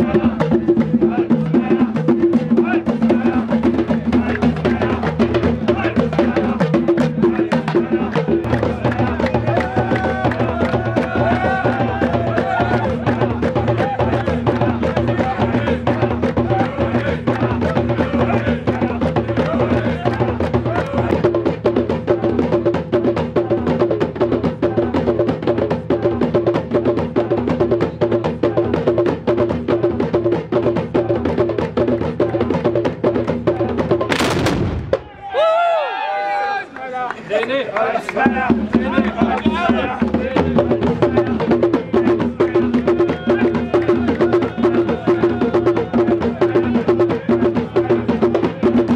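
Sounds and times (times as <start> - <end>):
voices: 0.0 - 21.4, 35.0 - 48.9
hand drums beating: 0.0 - 35.1, 38.2 - 48.9
people shouting: 2.6 - 5.0, 5.6 - 6.6, 8.7 - 17.2, 17.8 - 21.2, 34.9 - 41.4, 43.0 - 46.8
muskets firing: 34.1 - 35.1.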